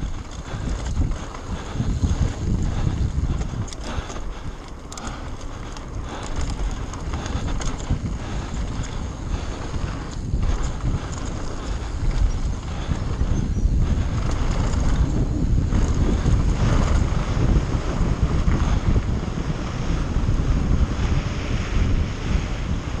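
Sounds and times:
tyres rolling on dirt: 0.0s - 18.8s
mountain bike rattling: 0.0s - 23.0s
wind buffeting microphone: 0.0s - 23.0s.

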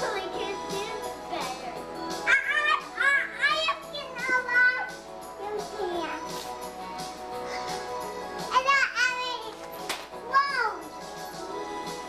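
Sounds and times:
background music: 0.0s - 12.0s
child calling out: 2.3s - 4.0s.

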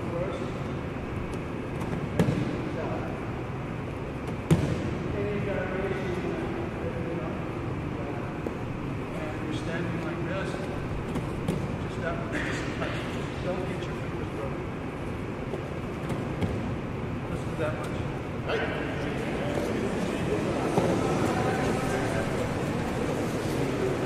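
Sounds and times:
sharp thuds in gym hall: 1.7s - 2.7s, 4.2s - 5.1s, 11.0s - 11.8s, 15.5s - 16.8s
low voices: 17.1s - 24.0s.

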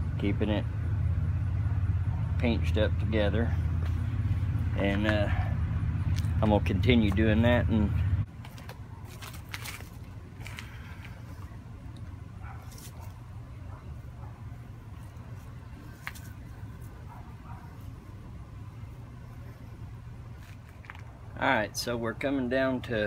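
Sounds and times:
road-paving machinery rumble: 0.0s - 23.0s
twine wrapping clicks and rustles: 8.4s - 11.2s.

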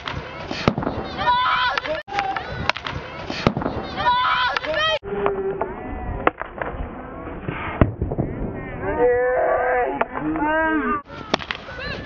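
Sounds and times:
voices: 0.0s - 7.5s, 8.1s - 12.0s.

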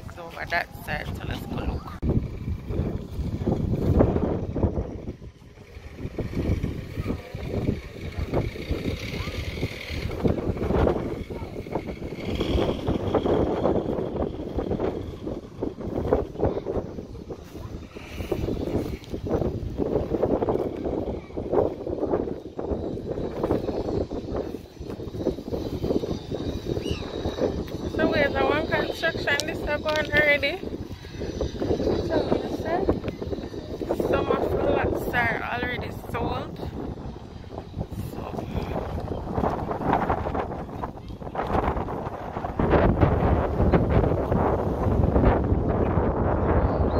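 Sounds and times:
wind buffeting microphone: 0.0s - 46.9s
indistinct voices: 20.3s - 42.7s.

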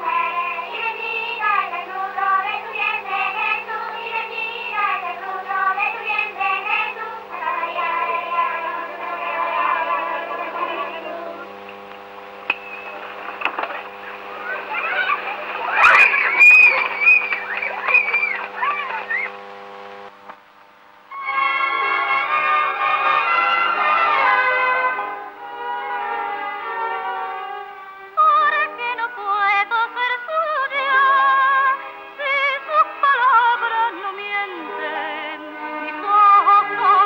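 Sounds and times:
high voices singing: 0.0s - 11.9s, 13.7s - 19.4s
faint steady hum: 0.0s - 37.0s
children shouting: 14.3s - 19.3s
musical accompaniment: 21.1s - 29.4s.

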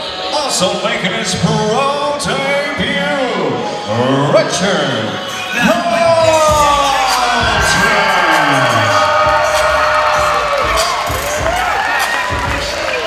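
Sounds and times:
music: 0.0s - 13.0s
crowd cheering and whooping: 6.2s - 13.0s.

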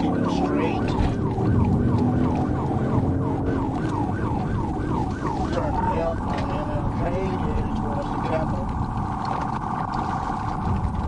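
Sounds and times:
car engine and road noise: 0.0s - 11.0s
police siren yelping: 0.0s - 11.0s.

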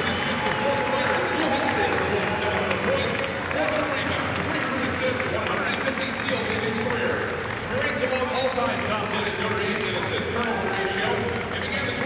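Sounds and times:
crowd voices calling out: 0.0s - 5.6s
applause: 0.0s - 12.0s.

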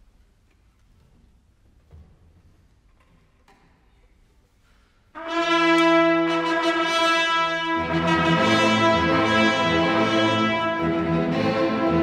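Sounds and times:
orchestral brass chord: 5.2s - 12.0s.

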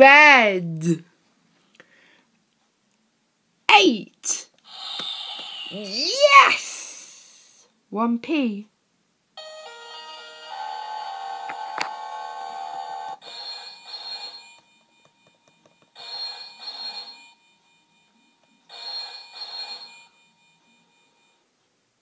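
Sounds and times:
synthesized telephone ring: 9.4s - 21.4s.

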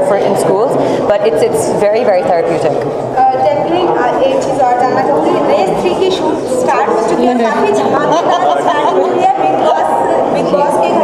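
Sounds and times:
overlapping voices chattering: 0.0s - 11.0s.

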